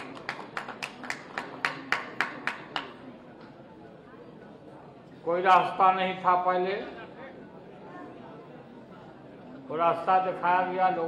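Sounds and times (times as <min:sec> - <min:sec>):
people clapping: 0:00.0 - 0:03.6.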